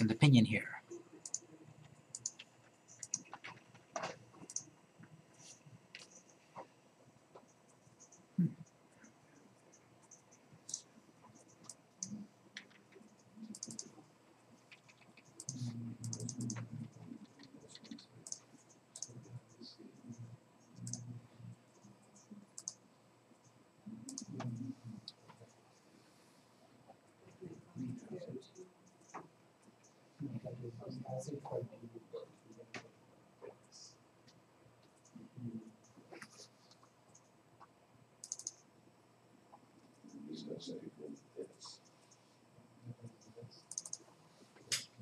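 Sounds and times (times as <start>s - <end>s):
mouse clicks: 1.2s - 1.4s, 2.1s - 4.6s, 13.5s - 13.9s, 38.2s - 38.6s, 43.7s - 44.0s
faint computer mouse clicks: 1.2s - 3.6s, 13.5s - 13.9s, 36.3s - 38.6s, 43.7s - 44.0s
typing on computer keyboard: 1.2s - 4.6s, 11.4s - 14.0s, 38.2s - 38.6s, 43.7s - 44.0s.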